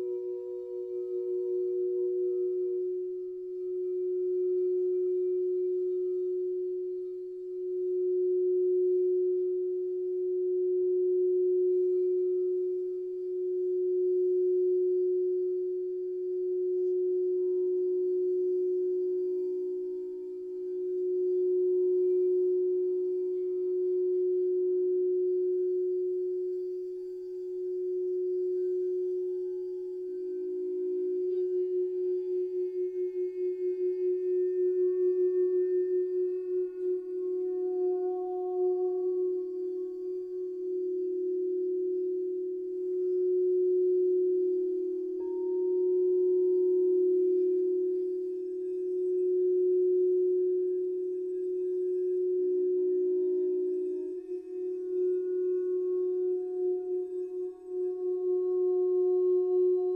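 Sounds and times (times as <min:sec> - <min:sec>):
crystal singing bowls ringing: 0:00.0 - 0:59.9.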